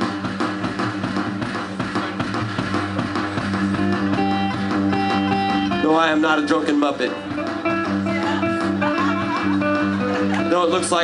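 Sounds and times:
acoustic guitar strumming: 0.0s - 11.0s
drum beats: 0.0s - 11.0s.

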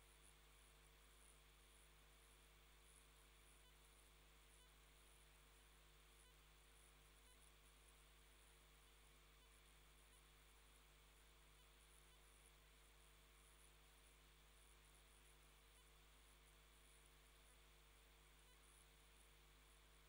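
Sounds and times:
faint high-pitched chirps: 0.0s - 20.0s
low electrical hum: 0.0s - 20.0s.

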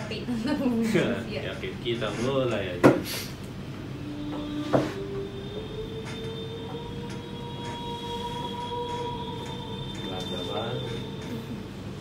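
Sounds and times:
long held musical note: 3.6s - 12.0s.

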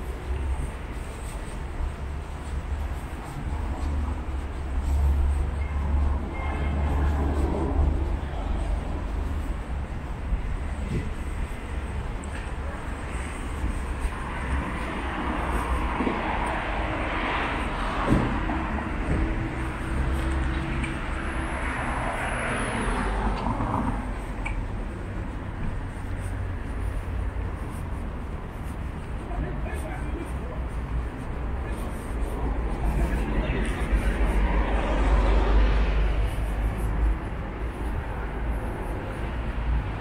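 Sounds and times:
vehicles passing on road: 0.0s - 40.0s.

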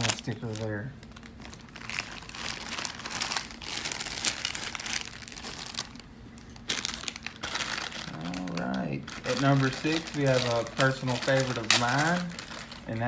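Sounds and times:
plastic foil wrapper crinkling: 0.0s - 13.0s.

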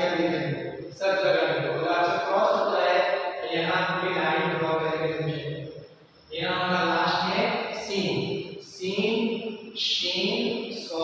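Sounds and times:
man chanting: 0.0s - 5.7s, 6.3s - 11.0s.

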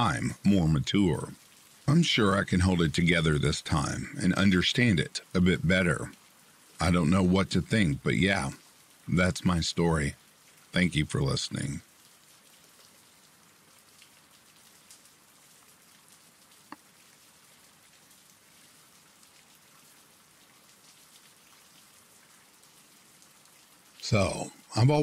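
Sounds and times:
rain patter: 0.0s - 25.0s.

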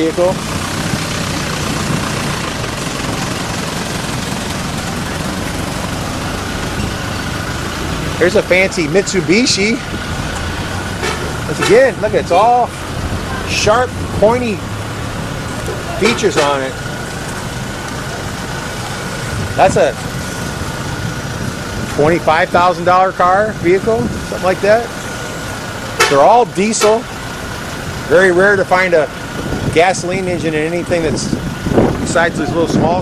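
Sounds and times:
engine idling: 0.0s - 33.0s.

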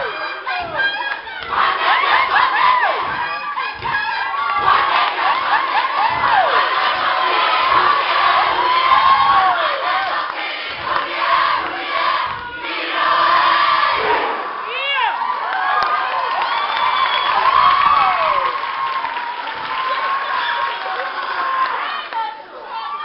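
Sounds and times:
audience cheering and screaming: 0.0s - 10.3s, 10.9s - 23.0s.

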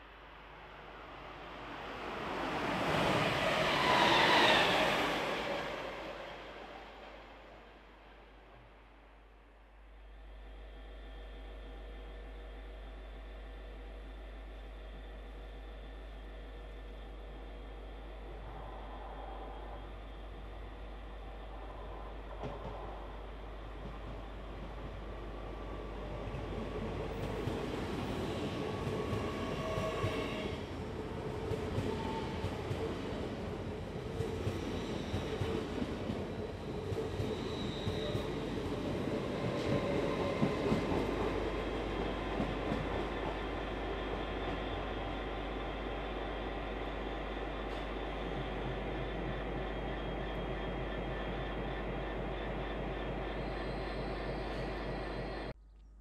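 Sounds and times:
train wheels rumbling on rail: 10.4s - 55.5s.

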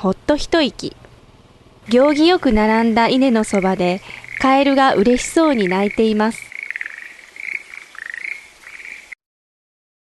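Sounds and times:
frogs croaking in chorus: 1.4s - 9.2s.

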